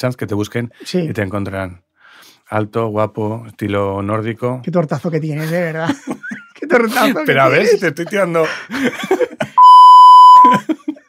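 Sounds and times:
censor bleep: 0:09.6 - 0:10.6.

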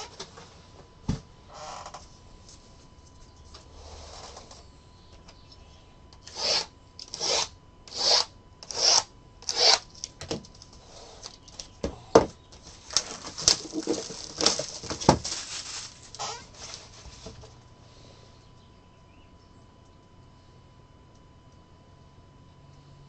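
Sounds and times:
cardboard boxes scraping on table: 0:12.9 - 0:17.3.

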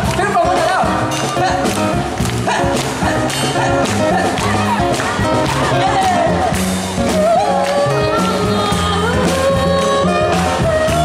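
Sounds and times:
man singing: 0:00.0 - 0:04.9, 0:05.5 - 0:11.0
upright double bass: 0:00.0 - 0:11.0.

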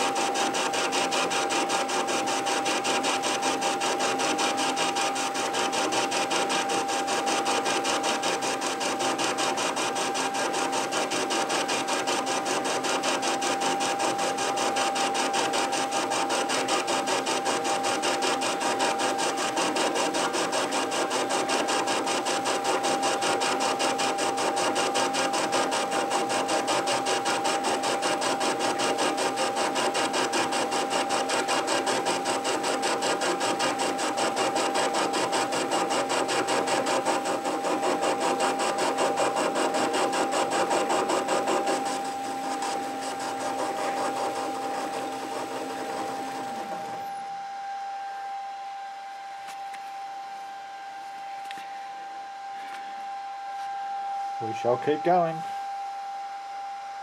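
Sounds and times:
metal lathe cutting: 0:00.0 - 0:47.1.

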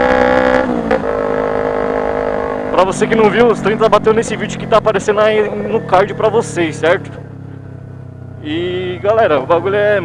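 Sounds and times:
motorcycle engine buzzing: 0:00.0 - 0:10.0.

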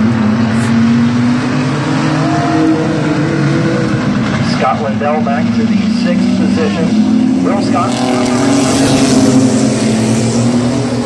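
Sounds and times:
racing truck engines droning: 0:00.0 - 0:11.0.

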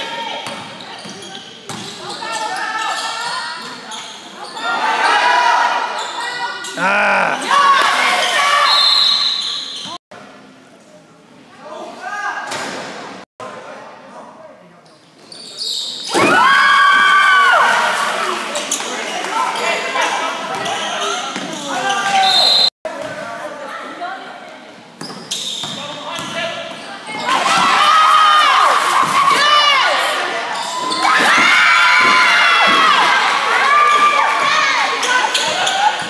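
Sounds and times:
people shouting: 0:06.8 - 0:08.0.

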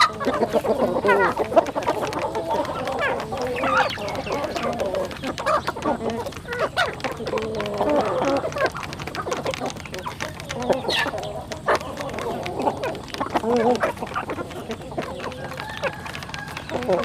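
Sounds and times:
beaks pecking grain: 0:00.0 - 0:17.0
chickens clucking: 0:00.0 - 0:17.0.

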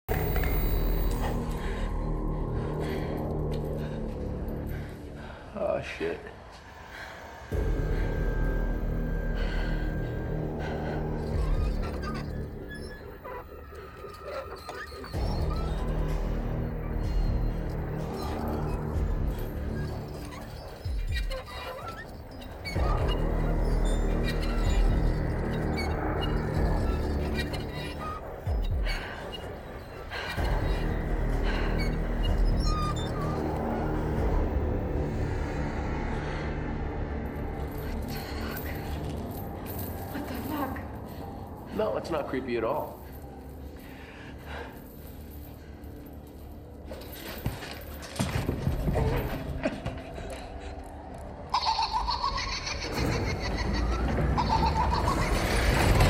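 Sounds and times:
ominous droning horror score: 0:00.1 - 0:56.0.

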